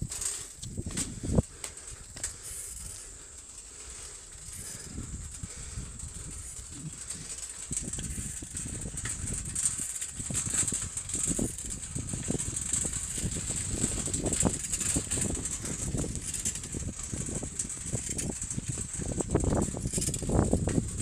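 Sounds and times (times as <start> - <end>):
steady high-pitched hiss: 0.0 - 18.3.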